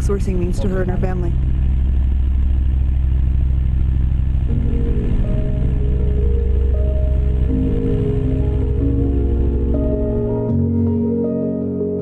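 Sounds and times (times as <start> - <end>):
propeller aircraft engine droning: 0.0 - 11.4
music notes: 4.5 - 12.0.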